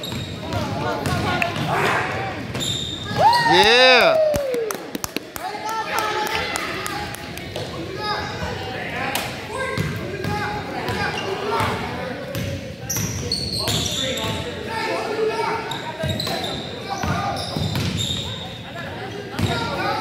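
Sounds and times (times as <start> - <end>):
sneakers squeaking: 0.0 - 3.6, 9.6 - 20.0
voices echoing in gym: 0.0 - 20.0.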